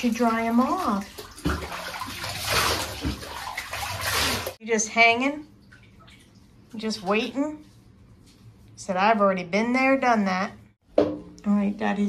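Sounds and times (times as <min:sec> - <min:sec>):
bathwater splashing and sloshing: 0:00.0 - 0:08.8.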